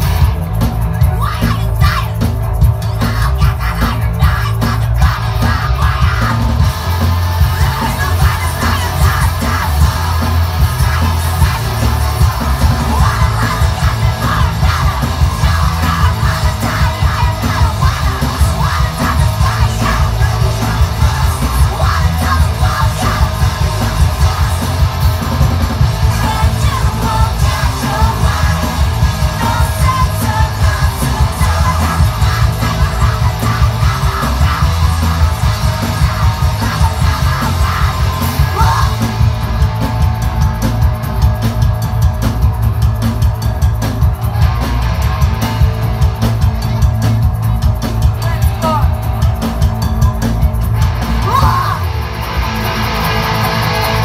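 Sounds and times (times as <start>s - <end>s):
live punk band playing: 0.0s - 54.0s
woman yelling and singing: 1.0s - 6.6s, 7.6s - 11.8s, 12.7s - 24.1s, 26.1s - 39.0s, 51.2s - 51.9s.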